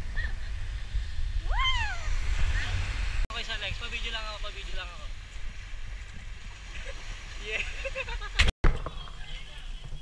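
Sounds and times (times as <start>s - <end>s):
low wind rumble on microphone: 0.0s - 10.0s
high-pitched vocal whoop: 1.4s - 2.1s.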